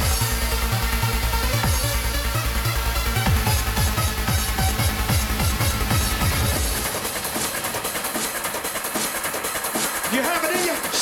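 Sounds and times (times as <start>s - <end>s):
hard trance music: 0.0s - 11.0s.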